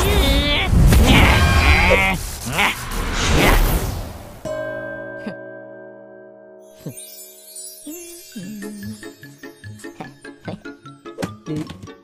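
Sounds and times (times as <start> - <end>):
cartoon character quavering cry: 0.0 - 2.8.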